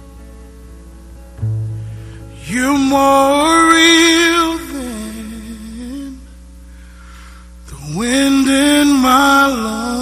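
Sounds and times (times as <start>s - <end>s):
low hum: 0.0s - 10.0s
man singing gospel: 2.4s - 6.4s, 7.6s - 10.0s.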